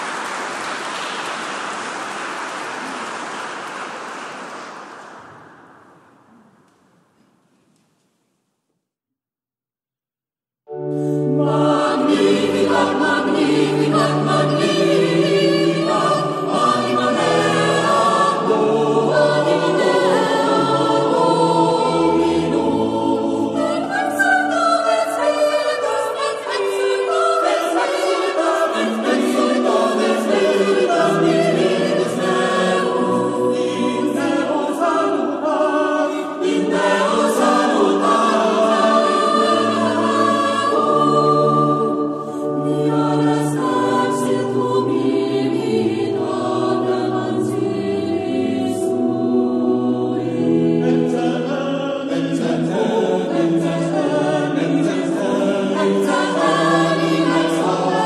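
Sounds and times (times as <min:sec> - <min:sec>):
organ accompaniment: 0:10.7 - 0:26.0, 0:27.1 - 0:58.0
mixed choir singing: 0:11.0 - 0:58.0.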